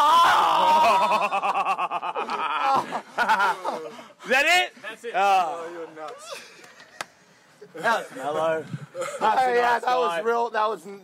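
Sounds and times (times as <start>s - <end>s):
men laughing loudly: 0.2s - 4.2s.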